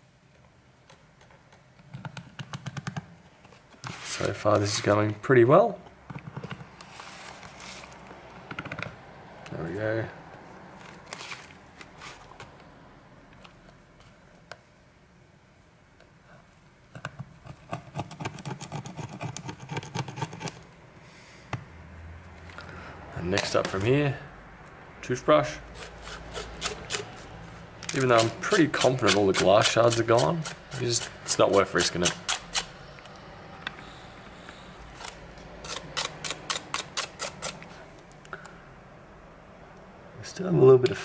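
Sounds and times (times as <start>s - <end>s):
screwdriver scraping phone frame: 17.4s - 20.6s, 25.8s - 27.3s, 27.9s - 32.7s, 35.0s - 37.7s.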